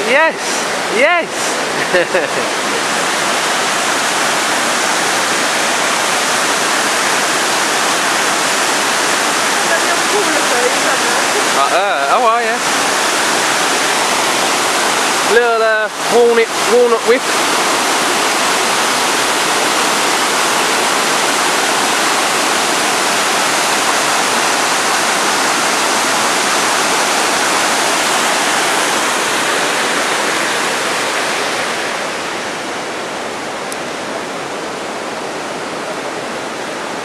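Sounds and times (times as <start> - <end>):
waterfall rushing over rock: 0.0 - 37.0.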